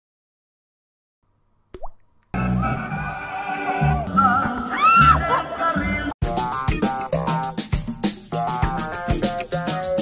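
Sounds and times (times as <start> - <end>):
rising plop sound effect: 1.8 - 2.0
background music with bass line: 6.2 - 10.0.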